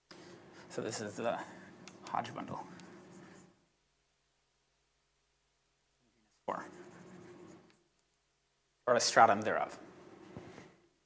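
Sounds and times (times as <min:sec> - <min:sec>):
faint scratching of writing on board: 0:00.2 - 0:03.6, 0:06.2 - 0:07.9.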